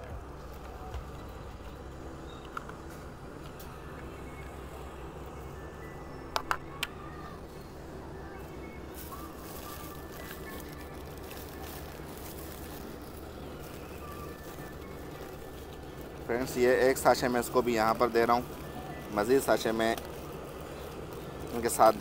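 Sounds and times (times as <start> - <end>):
background hum: 0.0 - 22.0
faint background music: 0.0 - 22.0
plastic bag rustling: 8.0 - 22.0.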